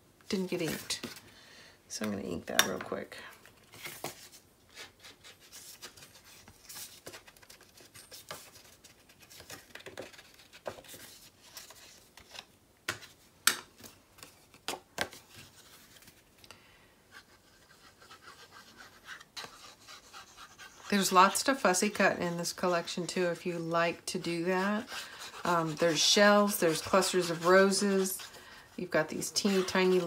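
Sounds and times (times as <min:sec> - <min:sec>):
ink pad scratching on paper: 0:17.4 - 0:22.0, 0:24.2 - 0:30.0.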